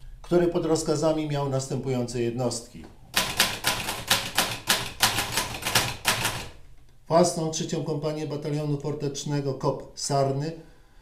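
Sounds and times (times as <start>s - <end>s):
typewriter key strikes: 3.2s - 6.5s.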